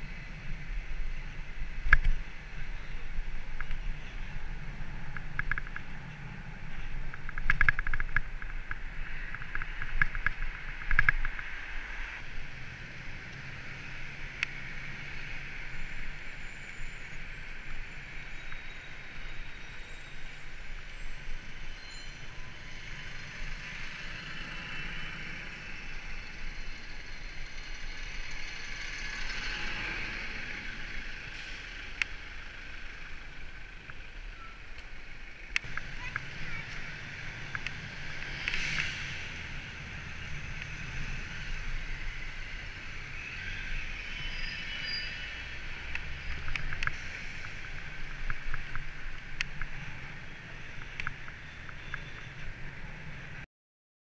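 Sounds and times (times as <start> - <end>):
passing vehicles: 0.0 - 53.5
bicycle rattles and knocks: 5.1 - 11.5
tyres hissing on road: 22.5 - 49.2.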